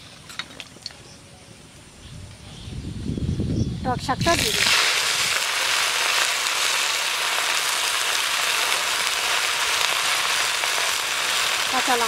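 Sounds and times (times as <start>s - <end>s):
greens sizzling in hot oil: 4.0s - 12.0s.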